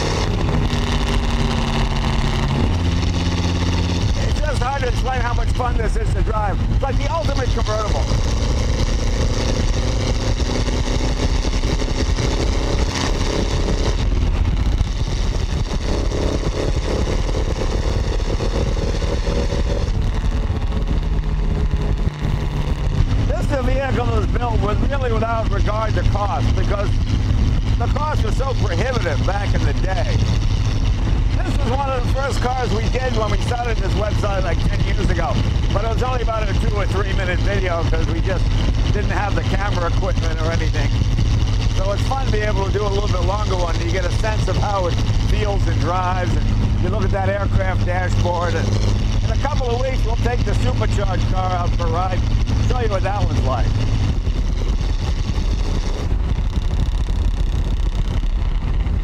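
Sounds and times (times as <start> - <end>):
car engine pulling: 0.0 - 59.0.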